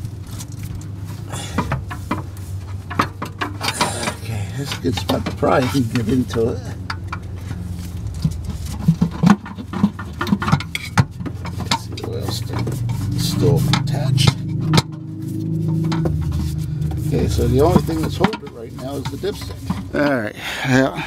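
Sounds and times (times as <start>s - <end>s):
low steady hum: 0.0s - 21.0s.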